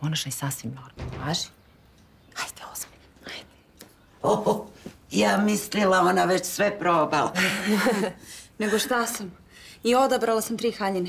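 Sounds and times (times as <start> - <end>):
person whispering: 2.3 - 3.5.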